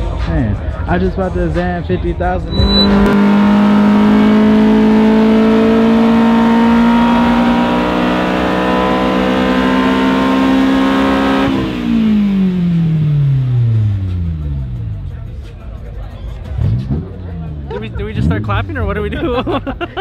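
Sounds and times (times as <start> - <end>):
car engine revving: 2.4 - 15.3, 16.4 - 19.2.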